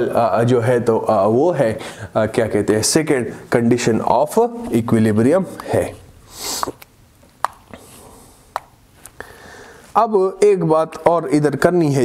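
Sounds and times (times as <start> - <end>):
faint room noise: 0.0 - 12.0.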